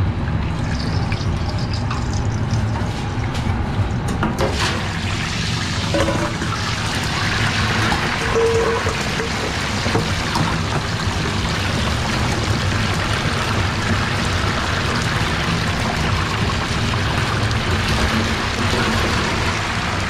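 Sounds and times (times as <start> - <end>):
deep fryer oil bubbling and sizzling: 0.0 - 20.0
steady low hum: 0.0 - 20.0.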